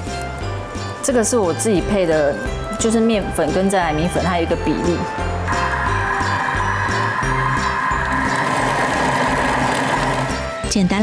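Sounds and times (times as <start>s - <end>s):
background music: 0.0s - 11.0s
food processor motor whirring: 5.5s - 10.5s.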